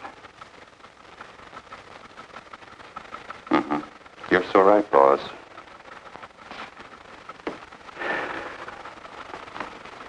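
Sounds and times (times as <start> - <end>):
old film soundtrack hiss: 0.0 - 10.0.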